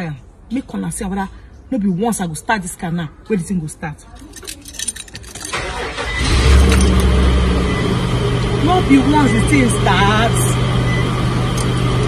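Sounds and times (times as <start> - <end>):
car engine starting and idling: 4.9 - 12.0.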